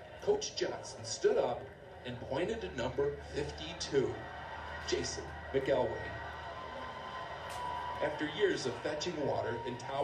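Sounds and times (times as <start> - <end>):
crowd noise through speakers: 0.0 - 10.0.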